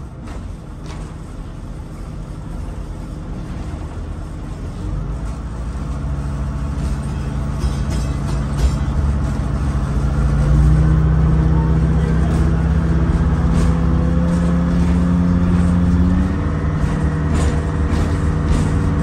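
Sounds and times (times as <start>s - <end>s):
running gear rumble: 0.0s - 19.0s
trolley motors whining: 0.0s - 19.0s.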